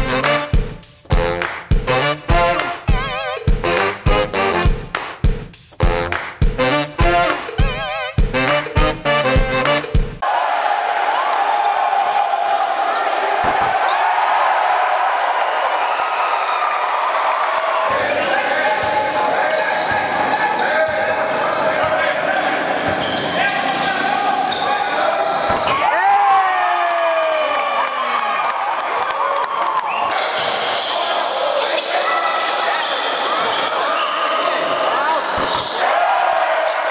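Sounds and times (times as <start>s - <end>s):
crowd voices: 17.4s - 26.0s
sneakers squeaking: 17.9s - 25.8s, 30.0s - 35.9s.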